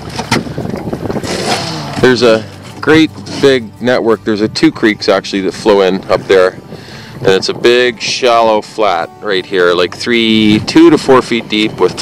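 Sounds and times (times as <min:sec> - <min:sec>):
outboard motor running: 0:00.0 - 0:12.0
water noise around boat: 0:00.0 - 0:12.0
wind: 0:00.0 - 0:12.0.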